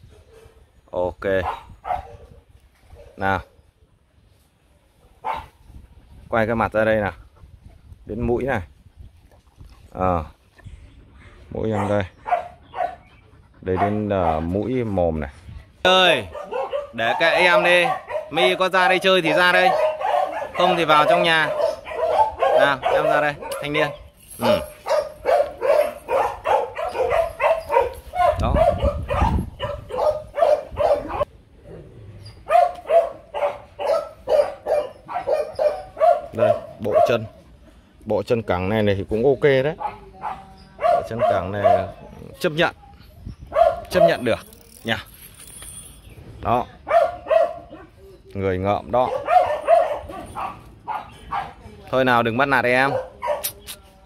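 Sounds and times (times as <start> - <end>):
dog barking in high yaps: 1.4 - 2.3, 5.2 - 5.5, 16.2 - 18.6, 19.2 - 31.3, 32.4 - 37.2, 39.8 - 42.0, 43.5 - 44.3, 46.9 - 48.0, 49.0 - 51.6, 52.8 - 53.6.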